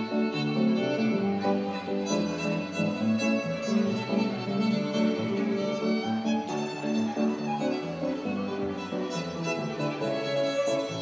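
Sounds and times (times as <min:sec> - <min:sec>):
fiddle melody: 0:00.0 - 0:11.0
piano accompaniment: 0:00.0 - 0:11.0.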